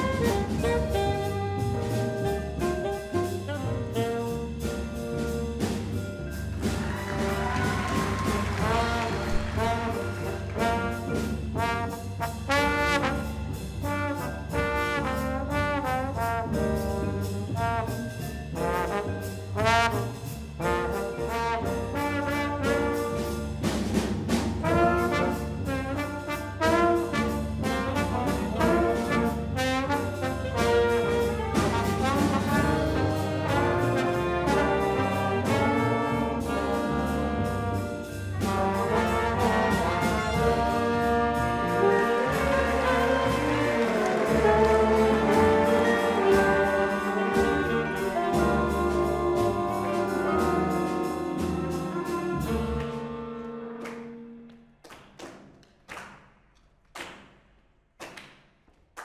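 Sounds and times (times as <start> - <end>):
jazz trombone solo: 0.0 - 5.8, 6.6 - 54.2
upright bass notes: 0.0 - 53.8
band with saxophones playing chords: 0.0 - 54.5.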